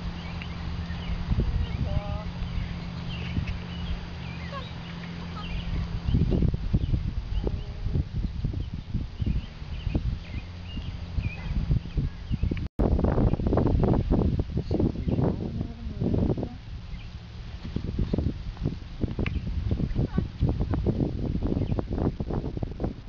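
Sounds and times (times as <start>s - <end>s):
small birds chirping: 0.0s - 15.9s, 16.5s - 22.2s
steady low hum: 0.0s - 23.0s.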